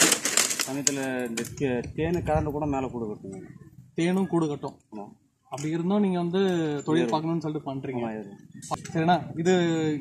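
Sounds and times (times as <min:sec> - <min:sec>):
man talking: 0:00.7 - 0:10.0.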